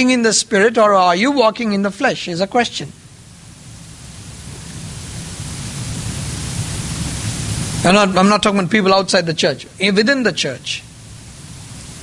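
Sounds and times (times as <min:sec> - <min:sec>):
man speaking: 0:00.0 - 0:03.0, 0:07.8 - 0:10.9
recording hiss: 0:00.0 - 0:12.0.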